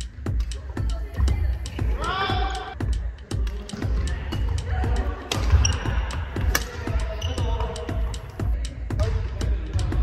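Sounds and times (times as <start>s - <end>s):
background music with bass: 0.0s - 10.0s
rackets striking shuttlecock: 3.3s - 8.3s.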